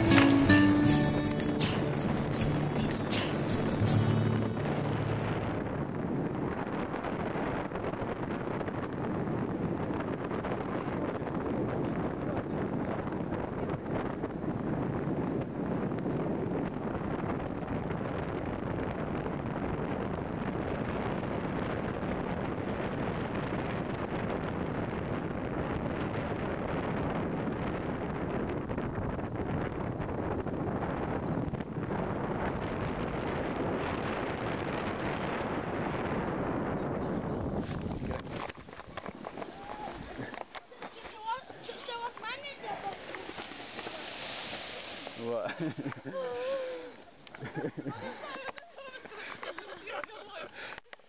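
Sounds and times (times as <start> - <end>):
wind buffeting microphone: 0.0 - 50.8.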